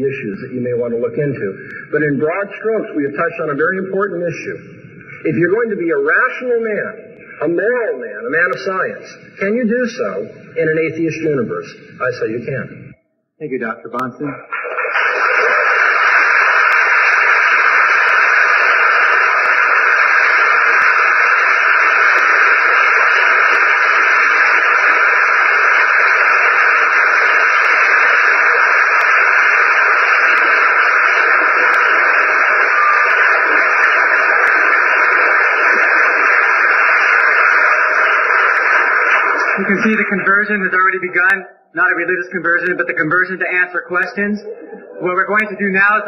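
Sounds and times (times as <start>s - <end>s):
audience applauding: 14.5s - 40.7s.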